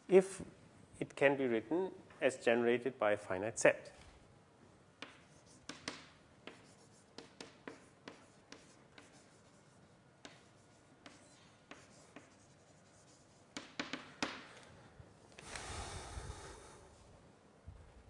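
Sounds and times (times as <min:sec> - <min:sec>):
writing on a board: 0:05.0 - 0:14.5.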